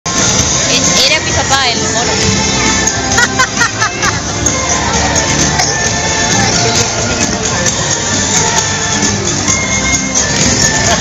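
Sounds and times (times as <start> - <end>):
crowd noise: 0.1 - 11.0
loud parade music: 0.1 - 11.0.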